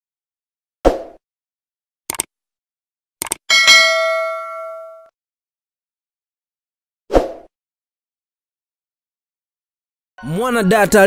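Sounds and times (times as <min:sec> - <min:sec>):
bell-like notification ding: 0:03.5 - 0:05.1.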